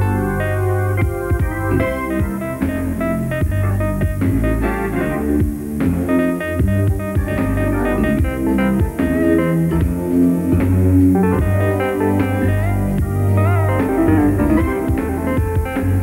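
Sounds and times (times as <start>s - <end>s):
band track with drums bass keyboard: 0.0s - 16.0s.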